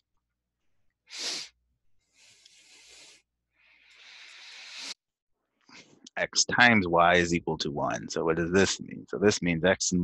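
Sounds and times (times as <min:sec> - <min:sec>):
person breathing in: 0:01.1 - 0:05.0.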